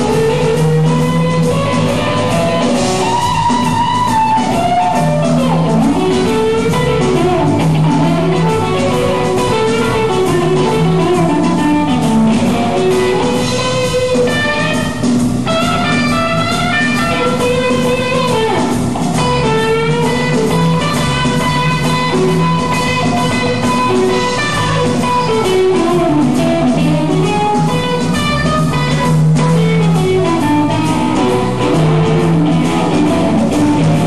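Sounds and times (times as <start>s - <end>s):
bass guitar: 0.0s - 34.0s
drum kit: 0.0s - 34.0s
electric guitar lead with bent notes: 0.0s - 34.0s.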